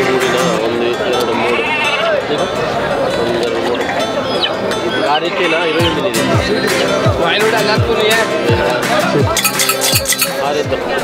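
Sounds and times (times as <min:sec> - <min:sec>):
men talking: 0:00.0 - 0:11.0
goat or sheep bleating: 0:01.3 - 0:02.2.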